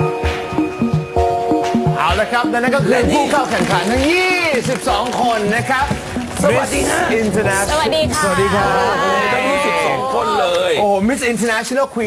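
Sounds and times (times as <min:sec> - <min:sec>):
voices greeting in chorus: 0:06.6 - 0:10.8.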